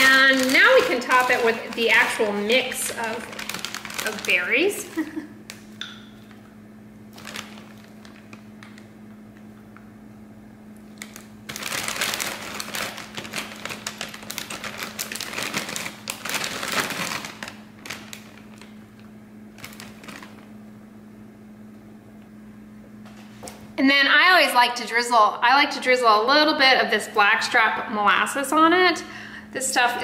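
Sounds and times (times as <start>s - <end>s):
plastic bag crinkling: 0.0s - 6.4s, 7.1s - 9.0s, 10.9s - 20.6s
steady low hum: 0.0s - 30.0s.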